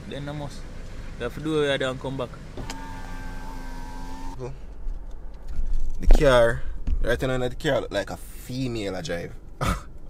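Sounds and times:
power window motor whining: 2.6s - 4.4s.

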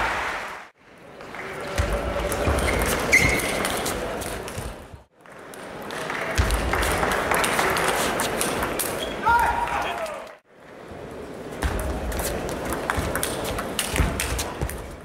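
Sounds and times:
spectator chatter in a hall: 0.0s - 15.0s.

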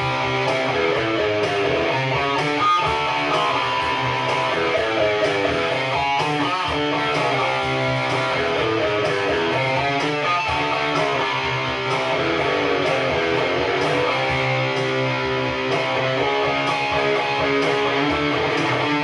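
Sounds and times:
electric guitar melody: 0.0s - 19.0s.

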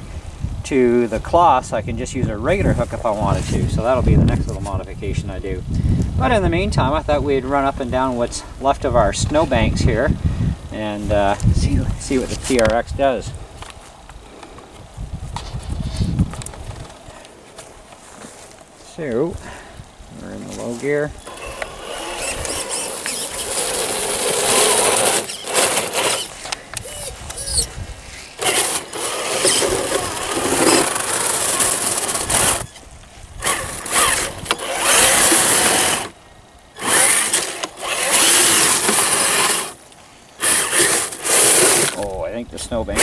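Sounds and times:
tyres churning through snow: 20.6s - 36.2s, 36.8s - 39.8s, 40.4s - 42.2s
electric motor whining: 21.2s - 32.8s, 33.4s - 36.2s, 36.8s - 39.8s, 40.4s - 42.0s.

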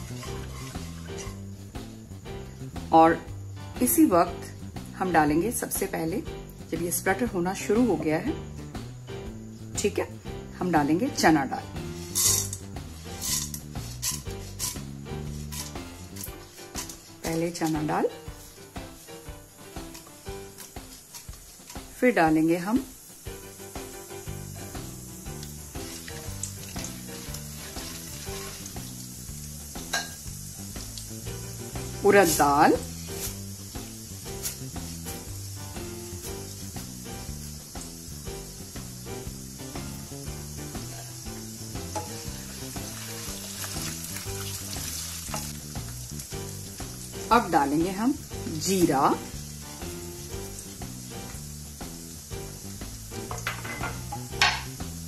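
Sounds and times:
background music with soft beat: 0.0s - 55.0s
hot oil sizzling: 0.0s - 55.0s.

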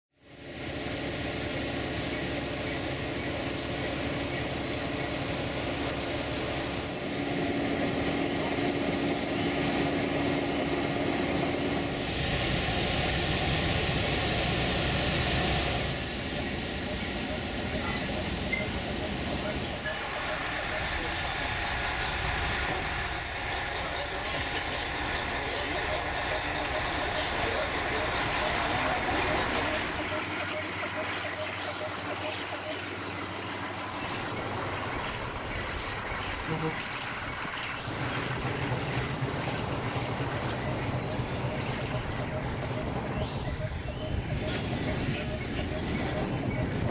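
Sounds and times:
diesel locomotive engine idling: 0.2s - 46.9s
train rumbling on track: 0.2s - 46.9s
loud hiss: 5.4s - 31.2s
hiss: 11.2s - 23.2s.

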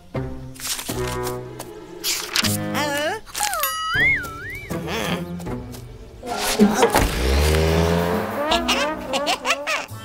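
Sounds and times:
background music: 0.0s - 10.0s
sliding whistle tone: 3.6s - 4.8s.

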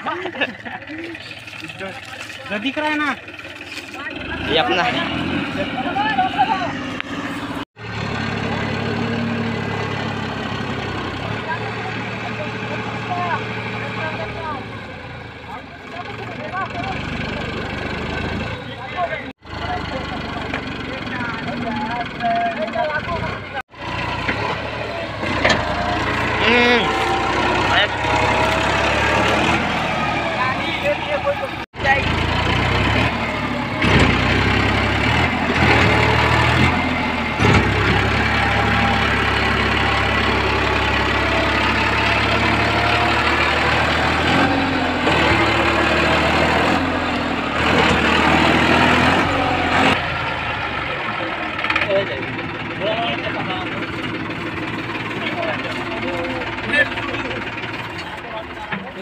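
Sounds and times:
tractor diesel engine under load: 0.0s - 59.0s
men shouting: 24.6s - 32.2s.

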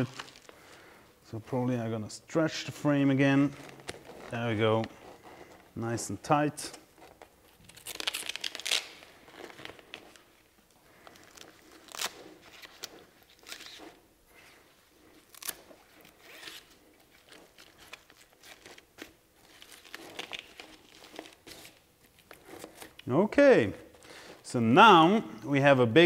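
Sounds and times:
fabric rustling and crinkling: 0.0s - 1.3s, 2.7s - 23.1s.

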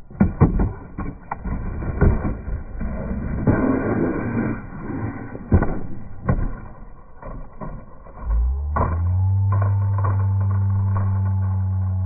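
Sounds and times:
skateboard clattering on concrete: 0.0s - 4.4s, 5.3s - 11.6s.

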